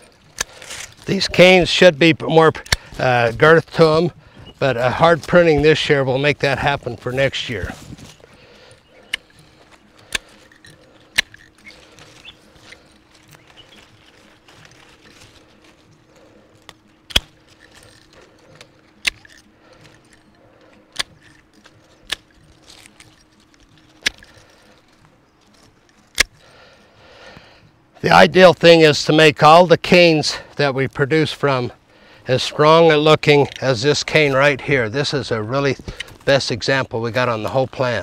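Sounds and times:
pruning shears snipping: 0:00.0 - 0:26.6, 0:33.0 - 0:36.6.

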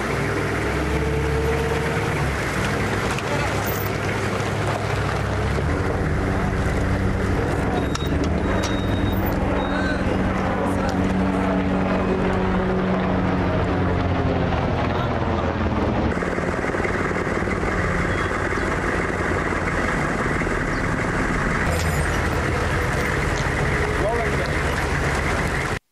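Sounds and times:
diesel truck engine passing: 0:00.0 - 0:25.8.

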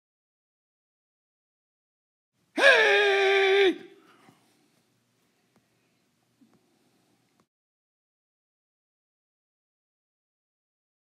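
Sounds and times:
high-pitched voice-like cry: 0:02.6 - 0:04.0.

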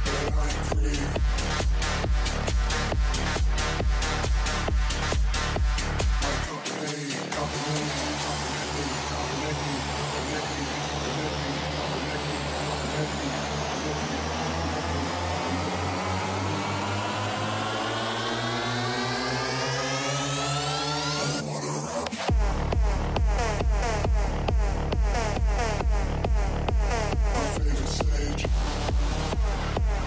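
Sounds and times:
low bass pulse: 0:00.0 - 0:06.5, 0:07.4 - 0:21.4, 0:22.3 - 0:30.0
sweeping electronic effect: 0:07.4 - 0:30.0.

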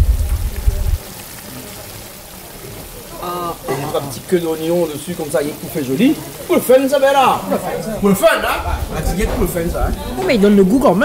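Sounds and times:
loud low rumble: 0:00.0 - 0:01.0
pot simmering hiss: 0:00.0 - 0:11.0.

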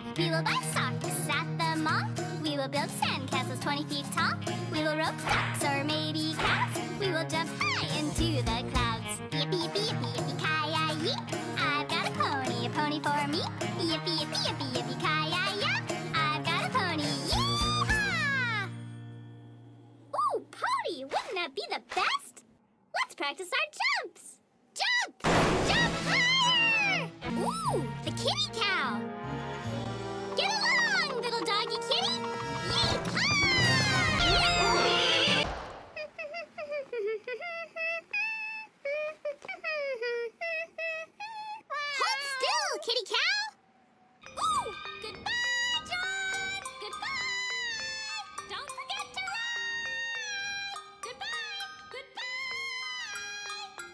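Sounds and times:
cartoon voice singing: 0:09.4 - 0:18.7, 0:30.4 - 0:35.4, 0:44.3 - 0:53.8
high-pitched cartoon voice crying: 0:17.3 - 0:18.7, 0:36.0 - 0:42.8, 0:44.4 - 0:53.8
backing music: 0:25.3 - 0:35.5.

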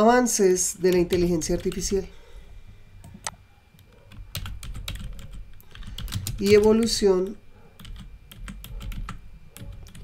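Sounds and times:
computer keyboard key clicks: 0:04.1 - 0:10.0.

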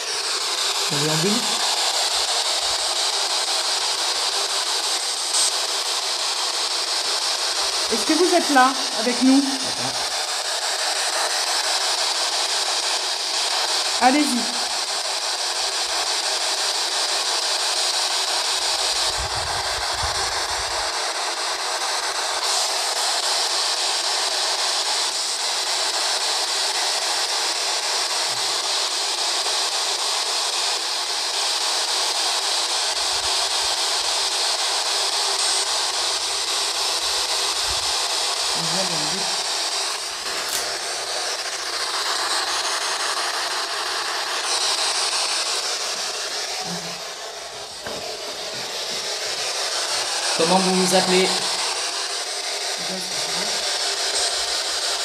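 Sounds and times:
loud radio static hiss: 0:00.0 - 0:55.0.

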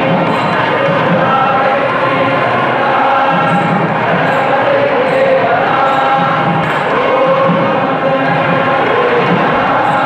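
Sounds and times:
group singing devotional chant: 0:00.0 - 0:10.0.

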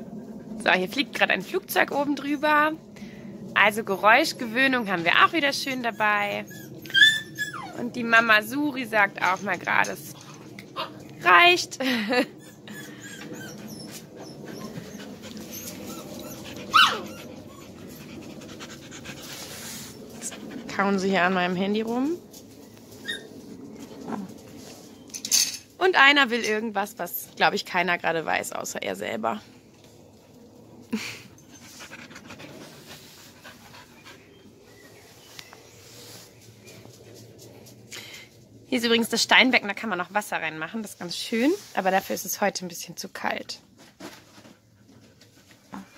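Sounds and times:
puppy yelping: 0:06.4 - 0:07.8, 0:12.4 - 0:17.7, 0:23.0 - 0:23.3
dog panting: 0:12.4 - 0:21.0, 0:31.0 - 0:34.6
puppies scuffling on grass: 0:34.6 - 0:37.9, 0:38.8 - 0:43.3.

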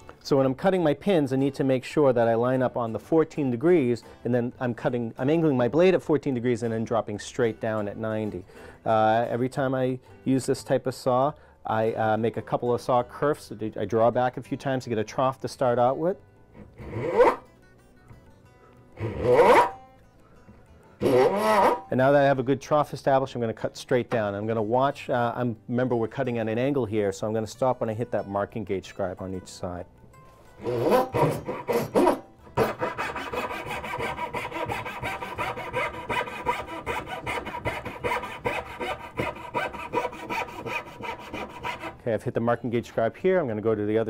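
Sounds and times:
saw stroke on wood with whine: 0:16.6 - 0:17.4, 0:19.0 - 0:19.8, 0:21.0 - 0:21.9, 0:30.6 - 0:42.0.

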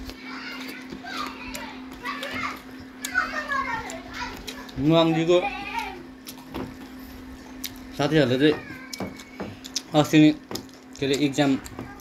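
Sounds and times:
children talking: 0:00.0 - 0:06.6, 0:07.2 - 0:12.0
steady low hum: 0:00.0 - 0:12.0.

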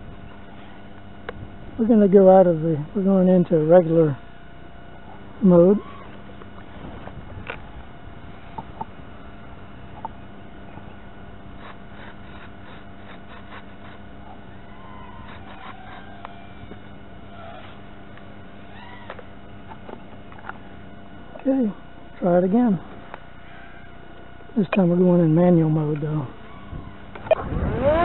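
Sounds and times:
steady electrical hum: 0:00.0 - 0:28.0.

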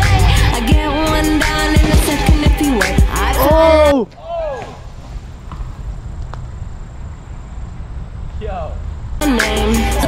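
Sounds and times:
low rumbling noise: 0:04.7 - 0:09.3.

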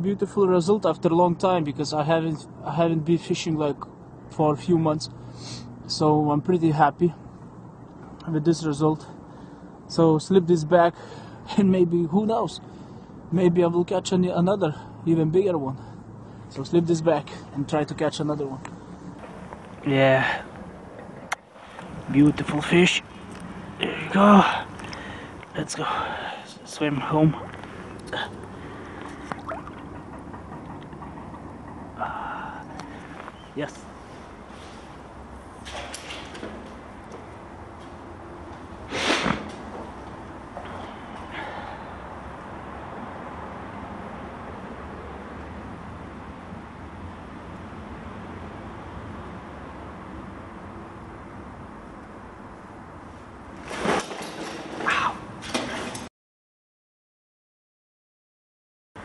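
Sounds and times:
low background noise: 0:00.0 - 0:56.0
outdoor background: 0:00.0 - 0:56.1
water sloshing: 0:27.3 - 0:30.8
water splashing: 0:28.9 - 0:30.0.

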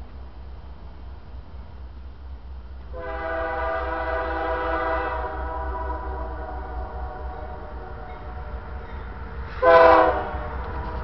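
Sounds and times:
locomotive air horn blast: 0:02.9 - 0:08.8, 0:09.5 - 0:10.9.

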